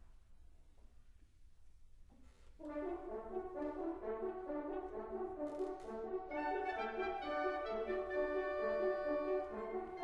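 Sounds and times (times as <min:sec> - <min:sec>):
brass playing sustained chords: 0:06.1 - 0:10.0.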